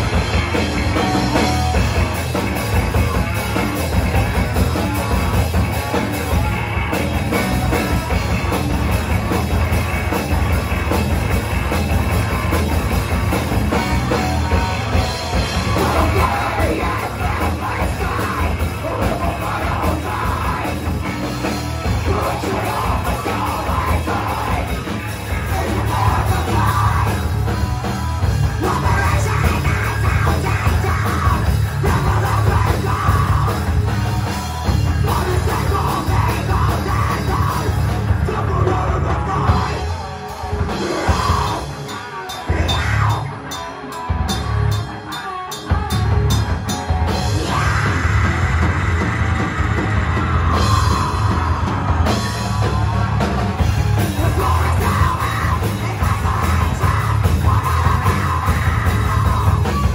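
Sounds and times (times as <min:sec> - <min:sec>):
bass guitar: 0:00.0 - 0:59.9
drum kit: 0:00.0 - 0:59.9
electric guitars: 0:00.0 - 0:59.9
heavy rock band playing: 0:00.0 - 0:59.9.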